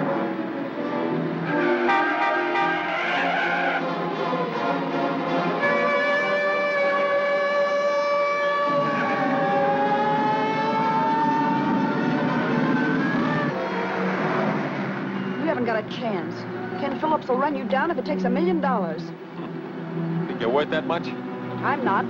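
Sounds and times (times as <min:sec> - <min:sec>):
car engines and road rumble: 0:00.0 - 0:22.0
police siren wailing: 0:01.4 - 0:03.9, 0:05.6 - 0:15.8.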